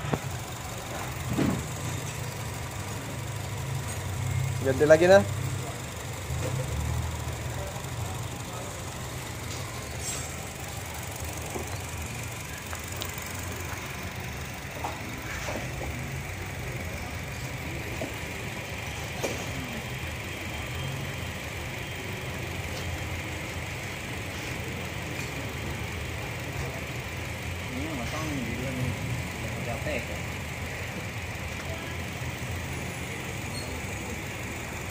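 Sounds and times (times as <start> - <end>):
car engine idling: 0.0 - 34.9.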